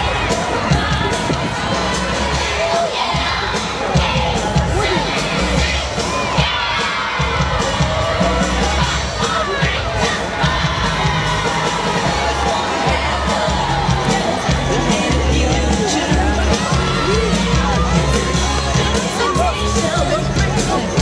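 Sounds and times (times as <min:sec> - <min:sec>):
crowd shouting and cheering: 0:00.0 - 0:21.0
parade music: 0:00.0 - 0:21.0.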